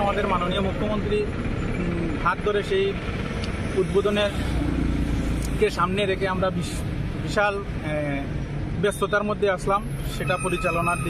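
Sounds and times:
road traffic: 0:00.0 - 0:11.0
vehicle engine rumble: 0:00.0 - 0:11.0
man talking: 0:05.5 - 0:11.0.

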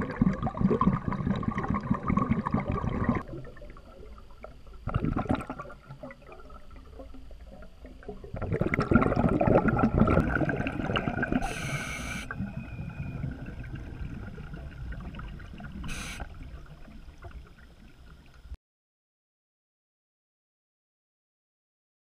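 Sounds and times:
exhaled bubbles gurgling: 0:00.0 - 0:18.4
regulator inhale hiss: 0:11.4 - 0:12.4, 0:15.8 - 0:16.4.

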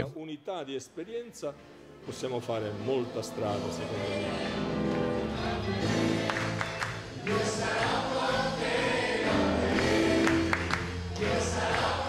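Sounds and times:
guitar accompaniment: 0:02.0 - 0:11.9
group singing worship song: 0:03.6 - 0:12.0.

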